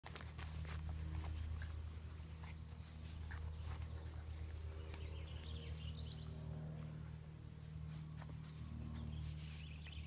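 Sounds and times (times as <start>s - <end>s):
steady low hum: 0.1s - 10.0s.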